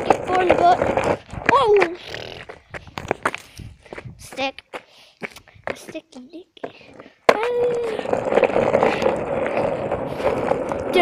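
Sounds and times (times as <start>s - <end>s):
skateboard rolling on asphalt: 0.0s - 11.0s.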